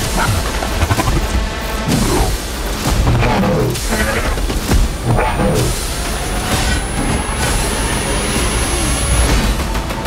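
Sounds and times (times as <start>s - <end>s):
heavy rumble: 0.0s - 10.0s.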